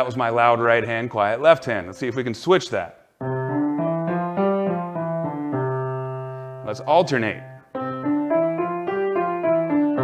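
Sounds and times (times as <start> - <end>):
grand piano playing: 3.2 - 10.0.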